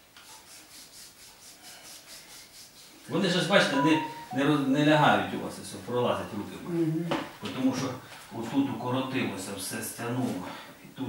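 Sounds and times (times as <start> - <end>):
hands rubbing skin in massage: 0.3 - 3.6.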